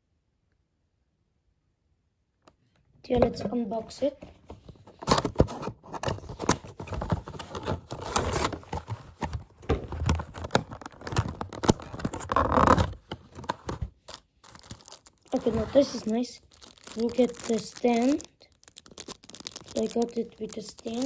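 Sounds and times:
packaging crinkling and rustling: 4.3s - 21.0s.

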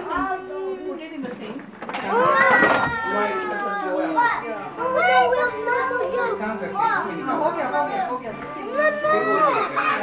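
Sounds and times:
young children calling and chattering: 0.0s - 1.3s, 1.9s - 10.0s
adult voices: 0.0s - 10.0s.

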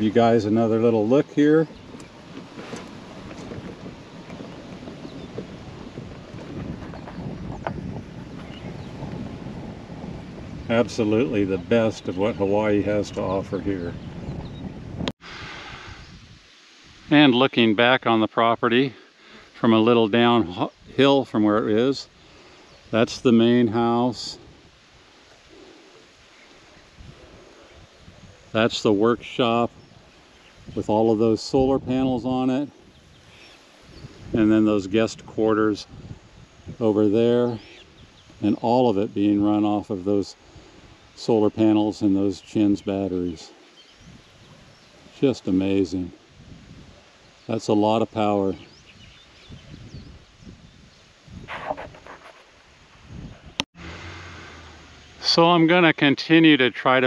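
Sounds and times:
golf cart rolling over grass: 0.0s - 14.4s
wind buffeting microphone: 0.0s - 17.1s, 24.2s - 47.5s, 48.2s - 53.6s.

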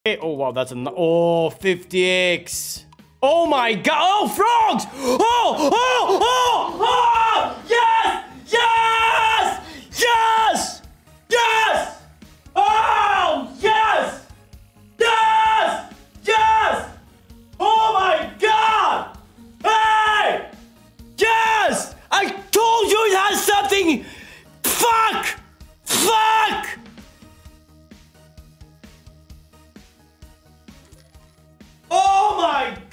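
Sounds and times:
man shouting excitedly: 3.2s - 14.3s, 14.9s - 20.6s, 21.2s - 26.8s, 31.9s - 32.9s
slot machine win music: 30.2s - 31.9s.

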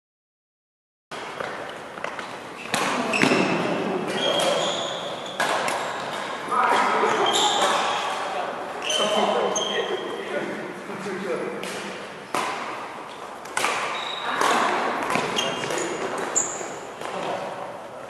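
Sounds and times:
rackets hitting shuttlecock: 1.2s - 8.3s, 11.6s - 17.6s.

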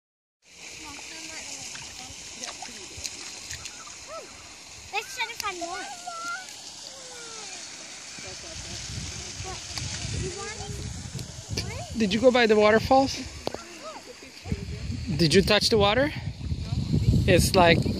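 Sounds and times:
steady outdoor hiss: 0.4s - 17.9s
feet splashing through water: 0.6s - 11.8s.

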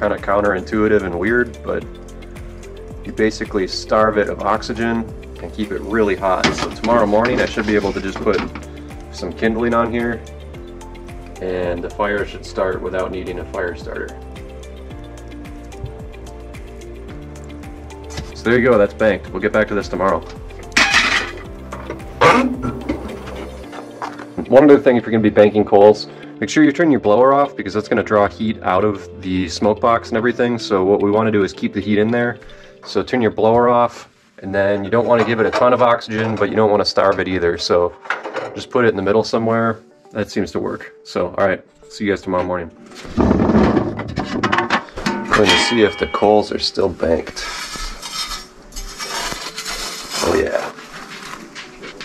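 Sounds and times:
tool scraping through ash and coals: 5.4s - 8.9s, 20.2s - 24.4s, 47.0s - 52.0s.

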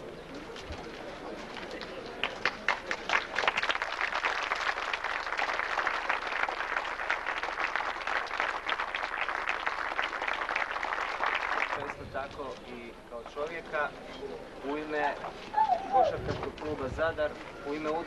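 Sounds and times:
crowd applauding: 1.5s - 12.0s.

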